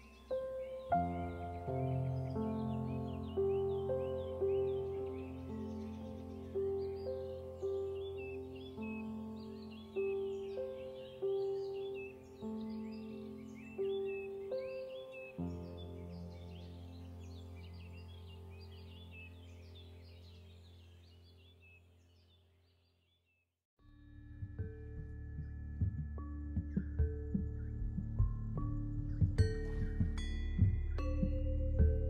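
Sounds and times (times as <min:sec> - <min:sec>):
calm instrumental music: 0:00.0 - 0:21.4, 0:23.8 - 0:32.0
birdsong chirping: 0:00.0 - 0:23.4.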